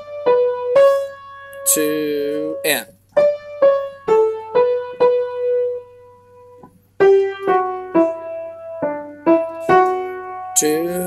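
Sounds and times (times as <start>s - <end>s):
piano melody: 0.0s - 11.0s.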